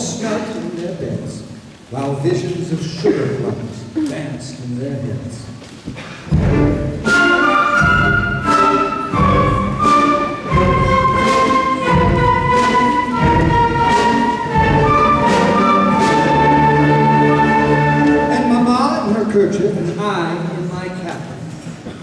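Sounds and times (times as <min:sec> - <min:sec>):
low brass and drum hits: 0:05.9 - 0:18.2
concert band playing: 0:06.3 - 0:19.2.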